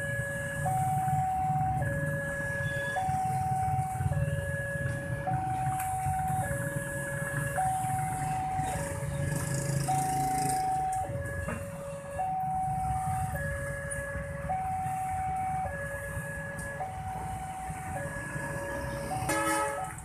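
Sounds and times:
level crossing two-tone alarm: 0.0s - 9.1s, 9.7s - 19.7s
motorcycle engines running: 0.1s - 20.0s.

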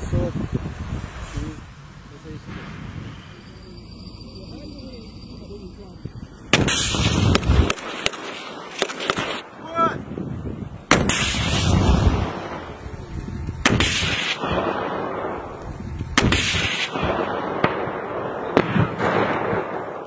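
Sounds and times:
rocket launcher bangs: 6.5s - 9.4s, 10.9s - 12.8s, 13.6s - 20.0s
short sharp cracks: 6.5s - 9.4s.

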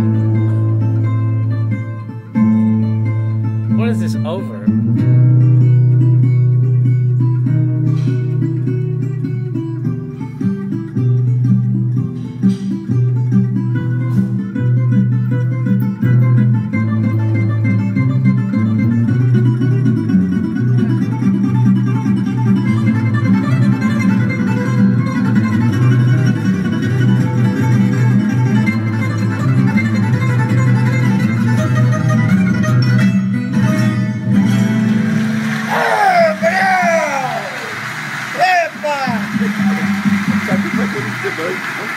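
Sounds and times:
plucked guitar music: 0.0s - 41.1s.

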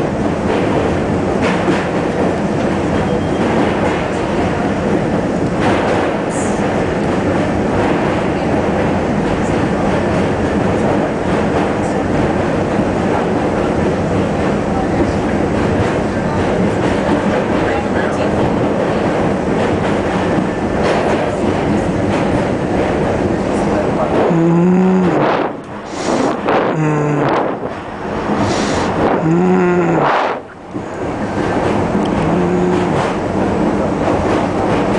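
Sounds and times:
train wheels rumbling on rails: 0.0s - 34.9s.

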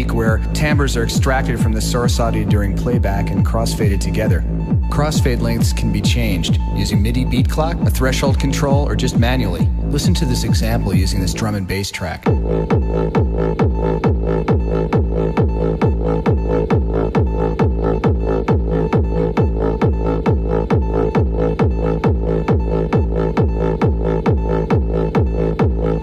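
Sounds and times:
drum and bass beat: 0.0s - 26.0s
held synthesized chord: 12.2s - 26.0s.

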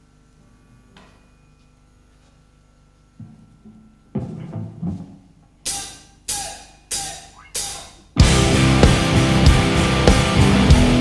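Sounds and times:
low drum thuds: 3.2s - 5.6s, 8.2s - 11.0s
cymbal strikes: 5.6s - 11.0s.

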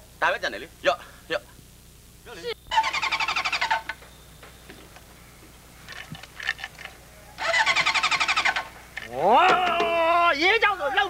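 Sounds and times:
motorcycle starter cranking: 2.7s - 4.0s, 5.9s - 9.7s.

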